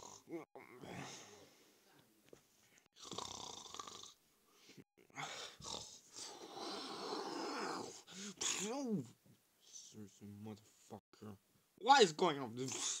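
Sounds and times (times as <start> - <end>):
cartoon snoring: 0.0 - 1.1, 3.0 - 4.2, 5.2 - 8.7.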